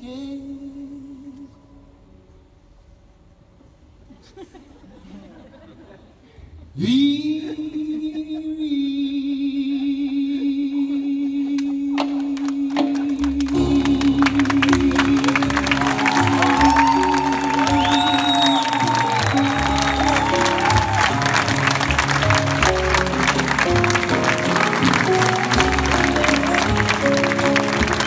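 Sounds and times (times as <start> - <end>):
person singing: 6.8 - 28.0
audience applause: 13.0 - 28.0.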